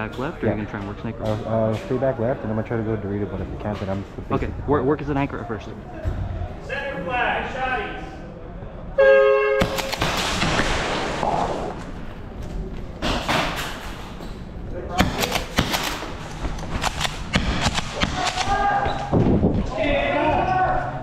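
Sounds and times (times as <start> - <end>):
airsoft shotgun cracks: 9.6 - 10.7.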